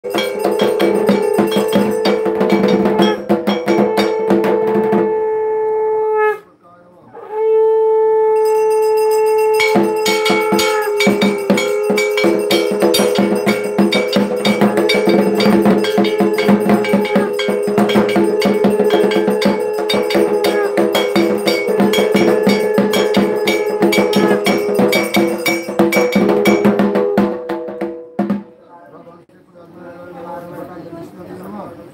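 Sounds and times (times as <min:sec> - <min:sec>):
hand bell ringing: 0:00.0 - 0:04.4, 0:08.4 - 0:26.9
held steady tone: 0:00.0 - 0:04.9, 0:08.4 - 0:26.8
conch shell blown: 0:00.0 - 0:06.4, 0:07.2 - 0:27.7.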